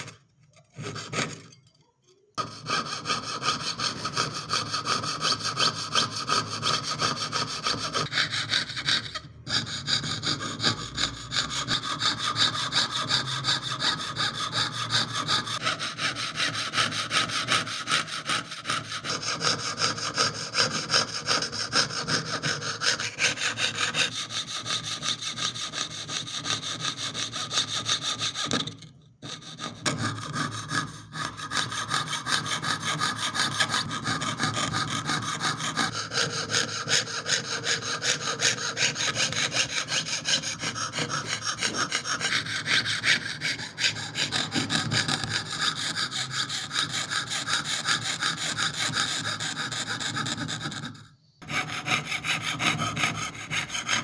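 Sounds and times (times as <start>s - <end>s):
saw blade cutting thin metal: 0.0s - 1.7s, 2.4s - 54.0s.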